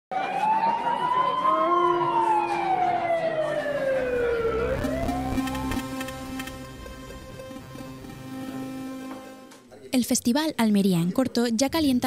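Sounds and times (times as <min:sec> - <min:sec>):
siren-like wailing tone: 0:00.1 - 0:09.6.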